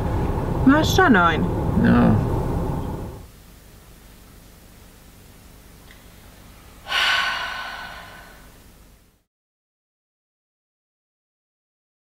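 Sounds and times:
person sighing: 0:06.9 - 0:08.5.

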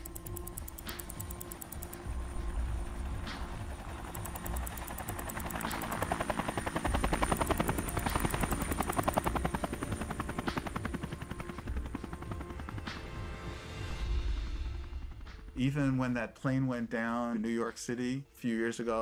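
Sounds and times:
helicopter rotor chop: 0:00.0 - 0:13.5
low music bed: 0:00.0 - 0:19.0.

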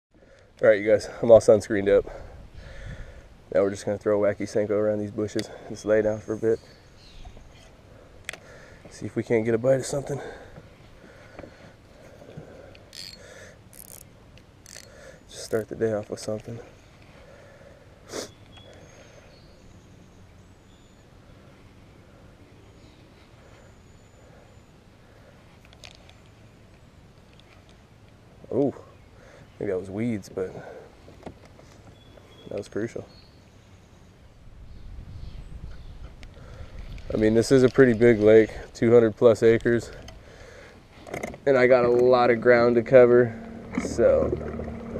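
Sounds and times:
fishing reel clicking and whirring: 0:12.8 - 0:15.7
wind buffeting a microphone: 0:34.5 - 0:37.5.

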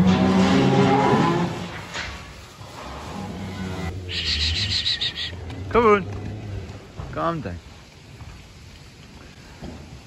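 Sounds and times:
cattle shuffling on straw: 0:00.3 - 0:10.0.

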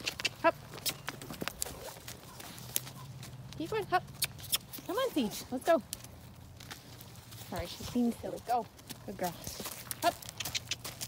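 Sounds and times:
horse hoofbeats on wood chips: 0:00.0 - 0:11.0.

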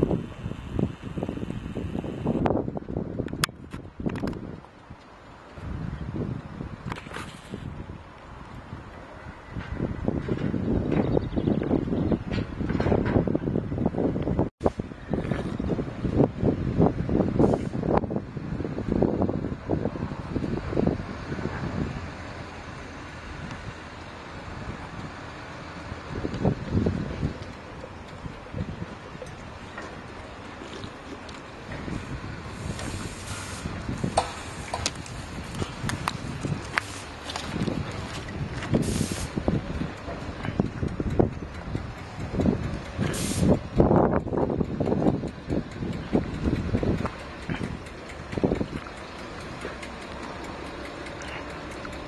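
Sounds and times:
wind buffeting microphone: 0:00.0 - 0:52.0.

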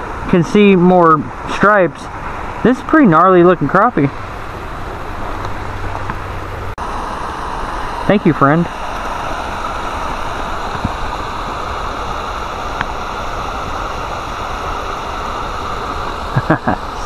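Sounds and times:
water rushing over spillway: 0:00.0 - 0:17.0.

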